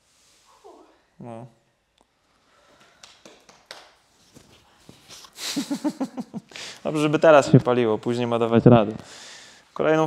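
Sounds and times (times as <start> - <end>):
person laughing: 5.4 - 6.5.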